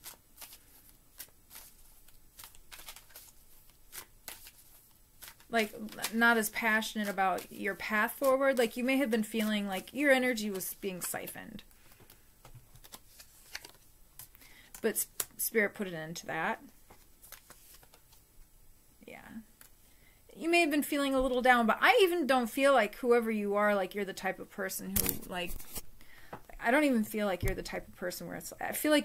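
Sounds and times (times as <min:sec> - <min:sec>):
cards being shuffled: 0:00.0 - 0:15.4, 0:16.8 - 0:18.2, 0:24.9 - 0:25.9
woman speaking: 0:05.5 - 0:11.6, 0:14.8 - 0:16.7, 0:19.0 - 0:19.5, 0:20.3 - 0:25.6, 0:26.5 - 0:29.0.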